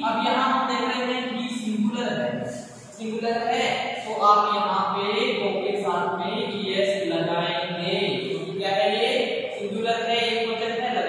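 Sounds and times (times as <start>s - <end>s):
person talking sing-song: 1.3s - 11.0s.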